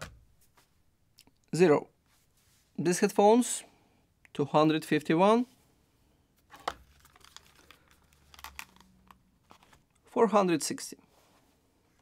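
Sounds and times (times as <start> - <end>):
headphones clicking and rustling: 6.4 - 10.1.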